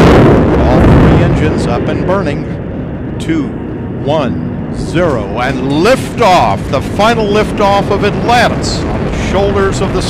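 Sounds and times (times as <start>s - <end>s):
rocket engines roaring: 0.0s - 10.0s.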